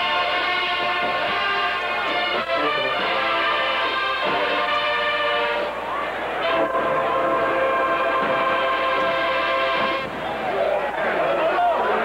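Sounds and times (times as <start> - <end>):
brass band sustained chords: 0.0 - 10.2.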